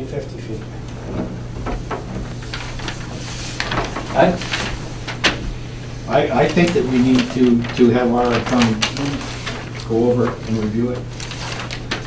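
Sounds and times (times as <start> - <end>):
steady low hum: 0.0 - 12.0
paper rustling and crinkling: 0.4 - 12.0.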